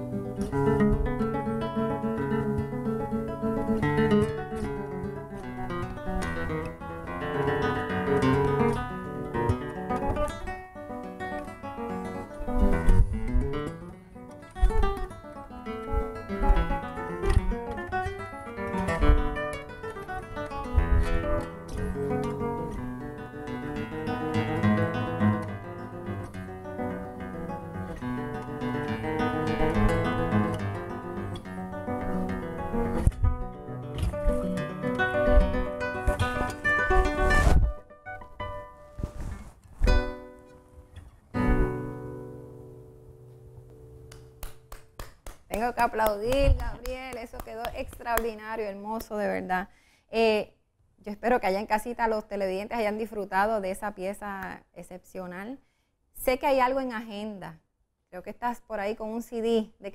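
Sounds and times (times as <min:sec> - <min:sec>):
fingerstyle classical guitar: 0:00.0 - 0:49.5.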